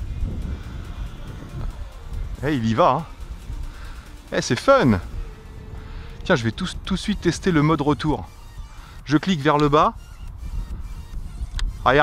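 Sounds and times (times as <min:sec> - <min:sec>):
wind buffeting microphone: 0:00.0 - 0:12.0
man's voice: 0:00.8 - 0:08.4, 0:09.0 - 0:10.0, 0:11.8 - 0:12.0.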